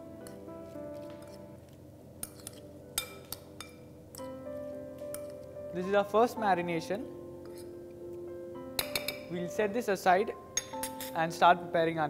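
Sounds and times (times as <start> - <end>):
soft background music: 0.0 - 12.0
spoon clinking against glass bowl: 8.8 - 9.3, 10.6 - 11.2.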